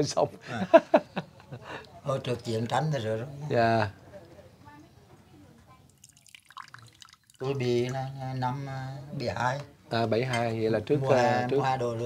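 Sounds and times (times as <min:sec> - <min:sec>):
liquid trickling into a glass: 0:05.9 - 0:08.0.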